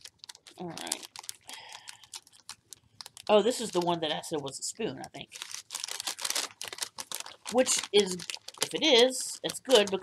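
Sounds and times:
package wrapping crinkling: 0.0s - 4.4s, 5.0s - 10.0s.

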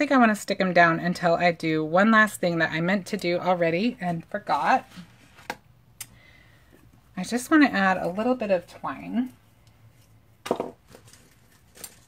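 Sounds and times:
craft supplies knocking on table: 10.4s - 10.8s.

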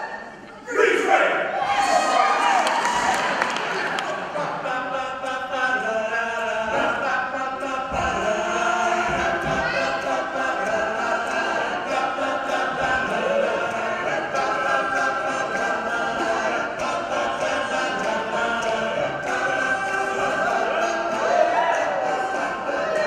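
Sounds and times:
men singing a cappella in harmony: 4.2s - 23.0s.

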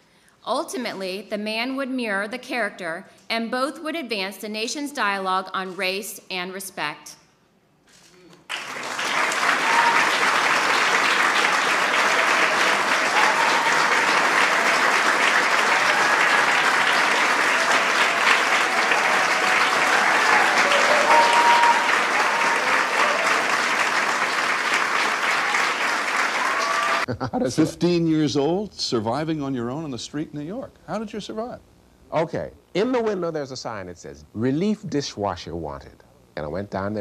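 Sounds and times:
audience applause: 8.5s - 27.6s.

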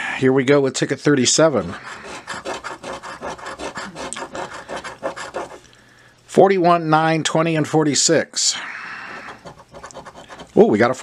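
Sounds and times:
coin scraping scratch card: 1.8s - 5.7s, 9.2s - 10.8s.

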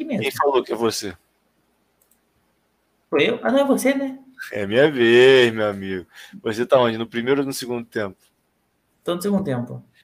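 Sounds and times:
person speaking: 0.0s - 1.2s
computer mouse clicks: 2.0s - 2.3s.

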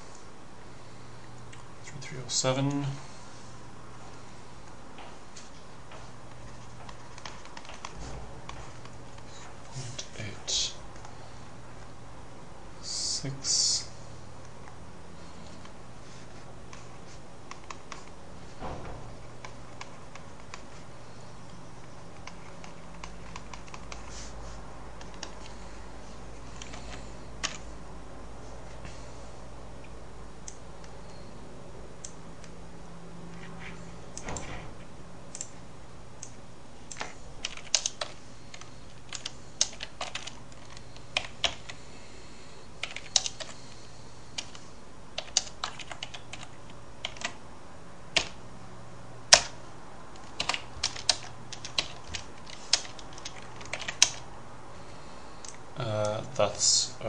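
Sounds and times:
low electrical hum: 0.0s - 57.0s
keyboard keystrokes clicking: 6.8s - 9.2s, 22.1s - 24.1s, 36.2s - 41.8s, 42.8s - 43.6s, 45.2s - 47.4s, 48.1s - 48.4s, 49.3s - 54.2s.

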